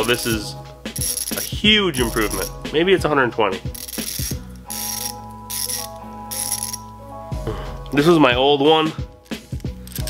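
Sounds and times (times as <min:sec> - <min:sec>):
ratchet clicking: 0:00.0 - 0:02.6, 0:03.7 - 0:06.9, 0:09.2 - 0:10.0.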